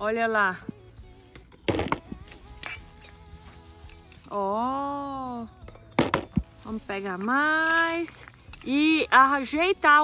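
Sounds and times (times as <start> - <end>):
faint background music: 0.0 - 10.0
grass rustling: 0.8 - 10.0.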